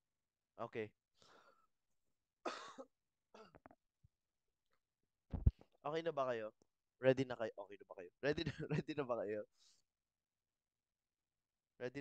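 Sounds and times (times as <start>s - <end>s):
man coughing: 2.5s - 3.6s.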